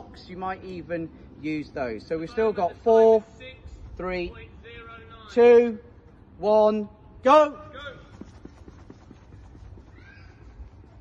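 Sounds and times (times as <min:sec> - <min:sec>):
running footsteps on turf: 0:07.6 - 0:11.0.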